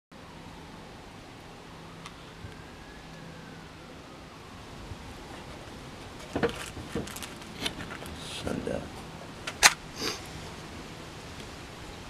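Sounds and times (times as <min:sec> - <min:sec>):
faint tone rising and falling: 0:00.2 - 0:06.3
steady background hiss: 0:00.2 - 0:12.0.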